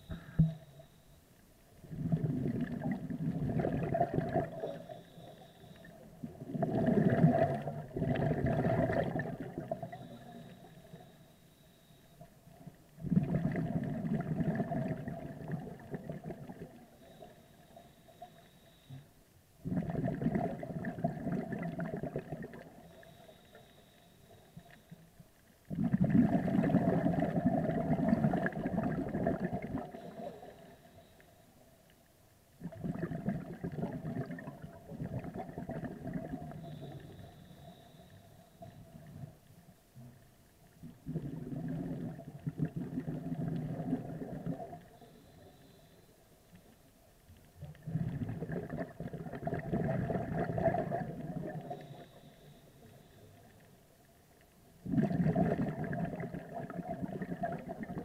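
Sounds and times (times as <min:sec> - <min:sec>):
exhaled bubbles underwater: 0:01.8 - 0:11.2, 0:12.2 - 0:19.0, 0:19.6 - 0:23.6, 0:25.6 - 0:31.1, 0:32.6 - 0:45.7, 0:47.5 - 0:53.8, 0:54.7 - 0:58.0.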